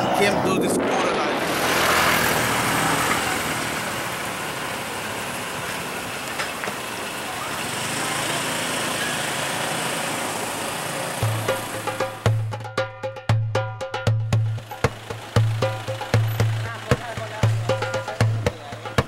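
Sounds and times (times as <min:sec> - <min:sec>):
motorbikes: 0:00.0 - 0:12.6, 0:14.3 - 0:19.0
vehicle engines passing: 0:00.0 - 0:12.6, 0:14.3 - 0:19.0
road noise hiss: 0:01.2 - 0:12.5, 0:14.4 - 0:19.0
percussive music: 0:11.2 - 0:19.0.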